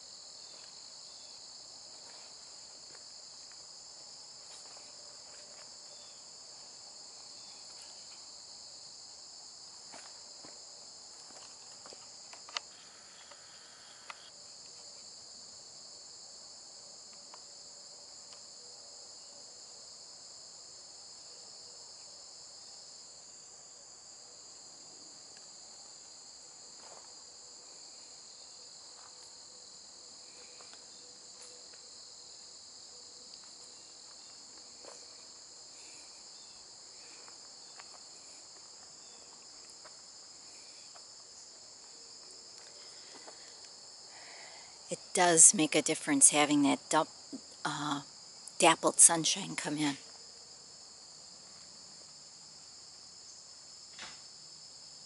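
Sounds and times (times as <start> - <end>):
high-pitched insect chorus: 0.0 - 55.0.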